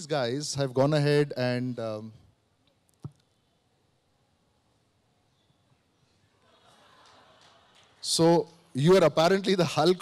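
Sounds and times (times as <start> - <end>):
man talking: 0.0 - 2.2, 8.0 - 10.0.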